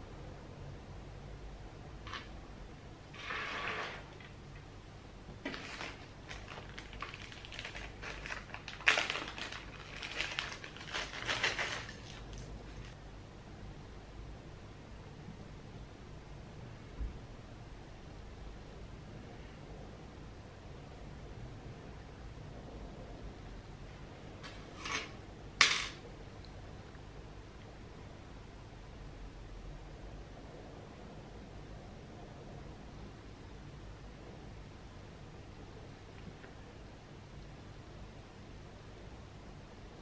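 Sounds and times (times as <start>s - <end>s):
metal jewellery scraping on table: 3.1s - 4.3s, 24.4s - 25.9s
plastic bag crinkling: 5.4s - 13.0s.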